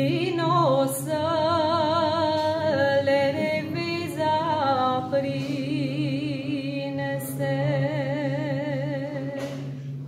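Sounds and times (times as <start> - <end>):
woman singing with vibrato: 0.0 - 9.9
low hummed drone: 0.0 - 10.0.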